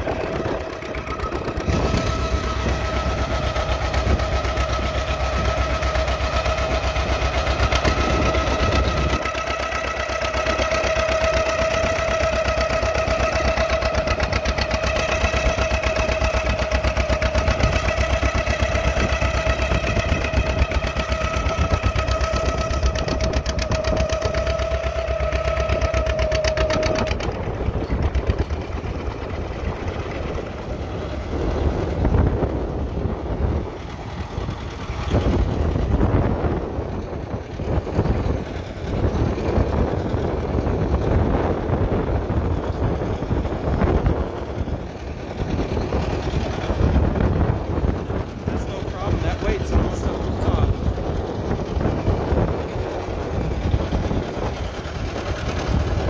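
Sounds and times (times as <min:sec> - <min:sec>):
steady high whine: 0:00.0 - 0:56.0
tractor engine popping under load: 0:00.0 - 0:56.0.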